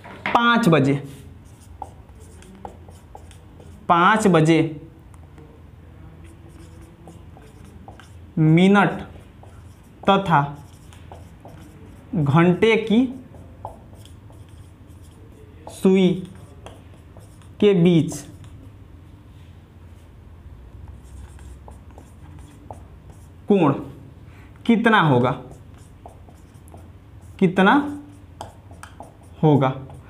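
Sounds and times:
marker pen writing on whiteboard: 0:00.3 - 0:04.5, 0:06.2 - 0:18.7, 0:20.8 - 0:23.9, 0:24.6 - 0:30.0.

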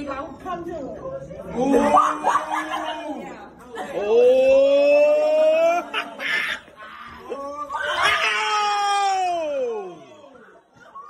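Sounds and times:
people hollering: 0:01.6 - 0:03.4, 0:04.0 - 0:11.0.

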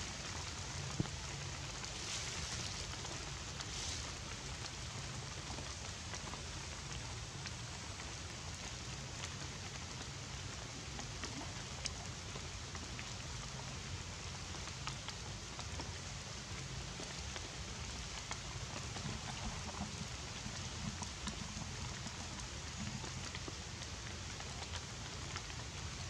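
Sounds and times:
light rain on leaves: 0:00.0 - 0:26.0
water drips ticking: 0:00.1 - 0:26.0.

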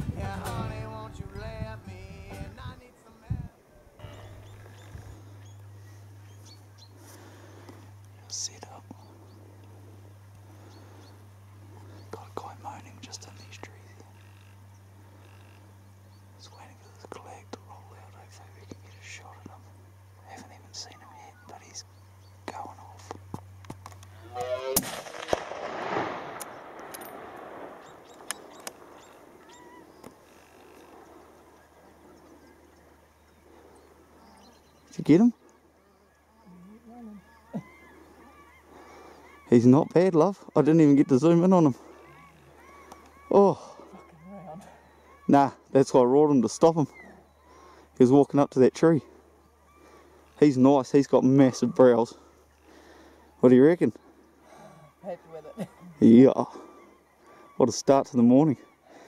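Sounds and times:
faint whispers: 0:07.0 - 0:15.6, 0:16.4 - 0:23.2
rifle shot with echo: 0:24.7 - 0:29.1.

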